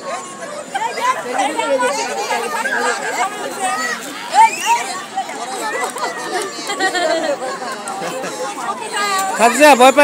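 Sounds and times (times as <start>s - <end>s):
voices chattering: 0.0s - 10.0s.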